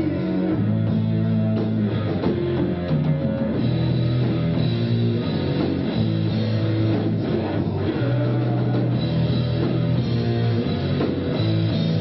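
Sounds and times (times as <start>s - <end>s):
drum kit: 0.0s - 12.0s
guitar and bass sustained notes: 0.0s - 12.0s.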